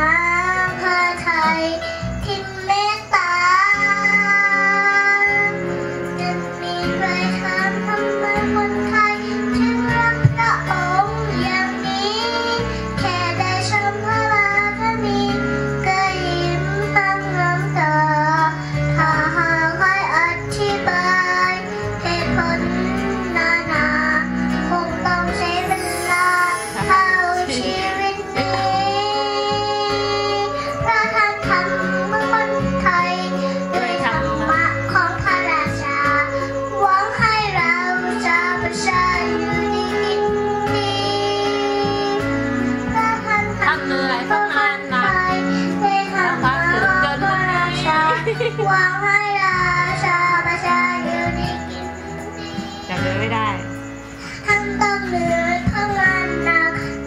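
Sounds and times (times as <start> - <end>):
backing music track: 0.0 - 57.0
girl singing into a microphone: 0.0 - 57.0.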